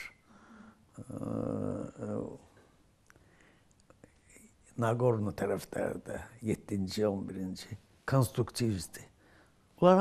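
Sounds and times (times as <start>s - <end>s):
man speaking: 1.0s - 2.5s, 4.7s - 9.1s, 9.8s - 10.0s.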